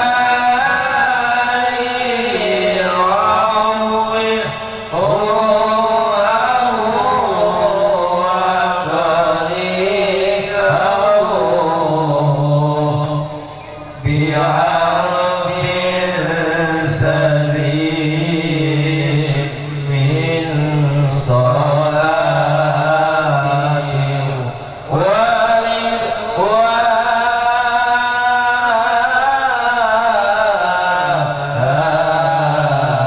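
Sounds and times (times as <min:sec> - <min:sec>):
men chanting in unison: 0:00.0 - 0:33.0.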